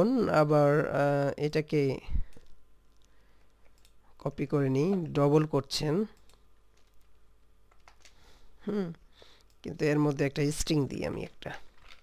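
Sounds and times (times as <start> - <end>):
computer mouse clicks: 2.3 - 4.0, 4.8 - 8.2.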